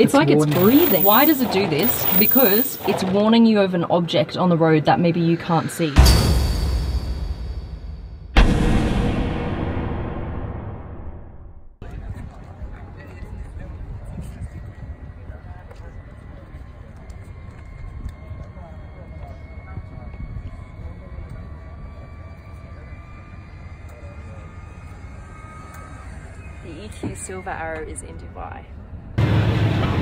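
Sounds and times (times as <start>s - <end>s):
boom sound effect: 5.9s - 11.8s
wind rumble on microphone: 11.8s - 22.6s.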